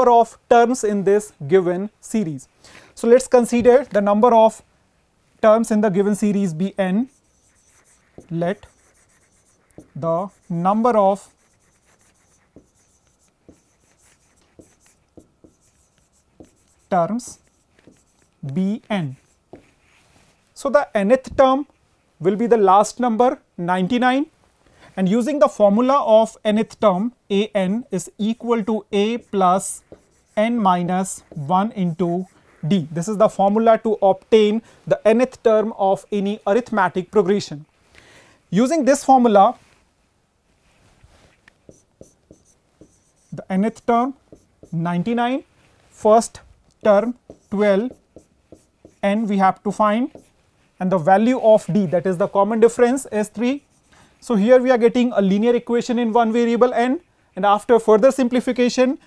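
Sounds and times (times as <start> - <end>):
chalk tapping and writing on chalkboard: 6.5 - 20.4, 28.0 - 34.2, 41.2 - 45.2, 46.3 - 50.4, 52.7 - 54.0.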